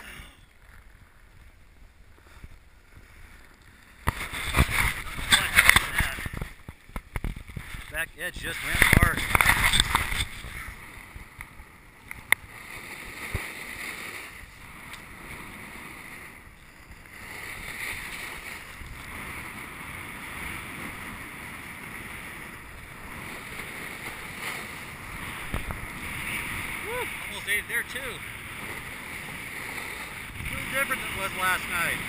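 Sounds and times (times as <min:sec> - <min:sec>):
snowboard sliding over snow: 0:00.0 - 0:11.4, 0:12.5 - 0:32.0.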